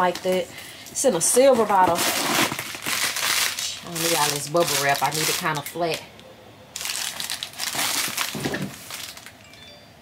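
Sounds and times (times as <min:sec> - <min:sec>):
bubble wrap crinkling: 0:01.1 - 0:06.0, 0:06.8 - 0:09.4.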